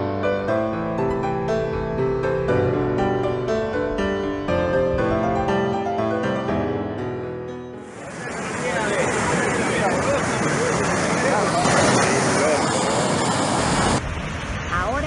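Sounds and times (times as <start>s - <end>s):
piano music: 0.0s - 10.7s
mud flow rushing down street: 7.8s - 15.0s
people's voices: 7.9s - 13.2s.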